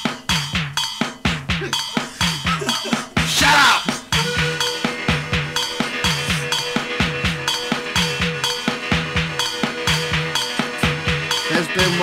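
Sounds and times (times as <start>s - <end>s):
drums beating: 0.0s - 12.0s
rock and roll music: 0.0s - 12.0s.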